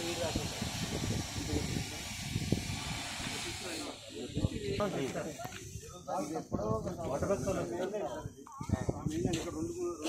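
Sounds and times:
steady hiss: 0.0s - 7.8s.

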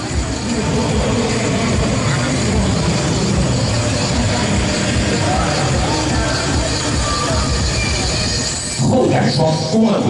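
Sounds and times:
audience noise: 0.0s - 10.0s
music over loudspeakers: 0.0s - 10.0s.

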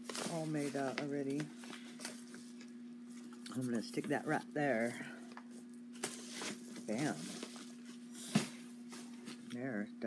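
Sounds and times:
paper envelope rustling: 0.0s - 4.4s
steady low hum: 0.0s - 10.0s.

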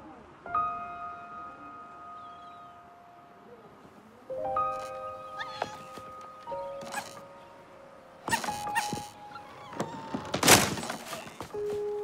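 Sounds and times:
squeaky dog-like whine: 4.8s - 6.0s, 6.7s - 7.2s, 8.3s - 11.4s.

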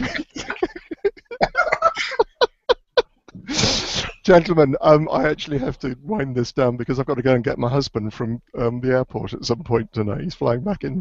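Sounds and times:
men laughing: 0.0s - 4.1s
loud breathy burst of air: 3.5s - 4.2s.

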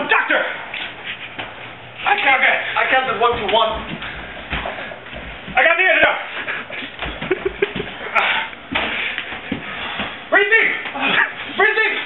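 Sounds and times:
shuffling and scuffling: 0.6s - 12.0s.

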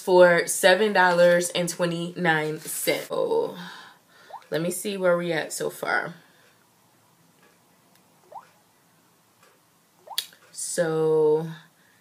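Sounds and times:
mouth click: 10.0s - 10.4s.

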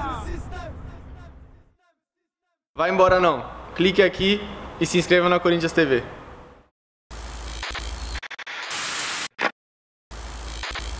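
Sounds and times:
stuttering static crackles: 7.1s - 9.5s, 10.1s - 10.9s
tv static hiss bursts: 7.2s - 9.5s, 10.2s - 10.9s.

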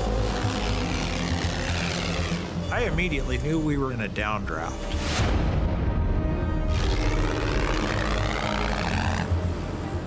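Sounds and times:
tense background score: 0.0s - 10.0s.

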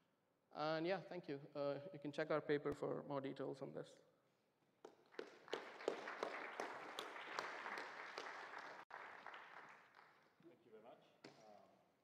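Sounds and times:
audience applauding: 5.1s - 10.3s.

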